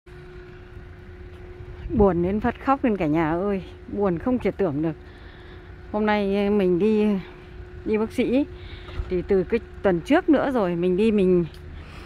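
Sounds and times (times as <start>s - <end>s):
faint constant hum: 0.1s - 12.0s
vehicle engines rumbling: 0.1s - 12.0s.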